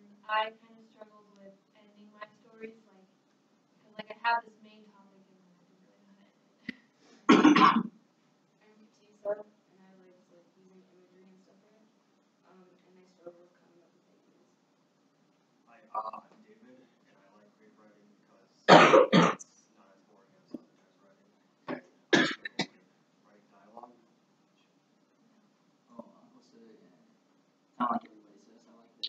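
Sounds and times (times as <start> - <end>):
person coughing: 7.3 - 7.9, 18.7 - 19.4, 22.2 - 22.7.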